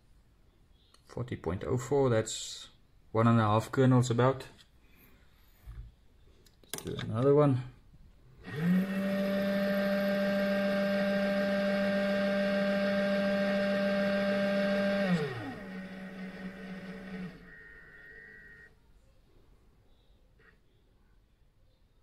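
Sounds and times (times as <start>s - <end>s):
powder dispenser motor spinning: 8.4s - 18.7s.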